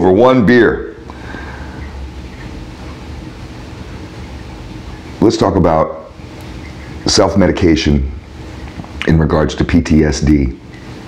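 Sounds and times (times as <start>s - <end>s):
steady low rumble with hum: 0.0s - 11.0s.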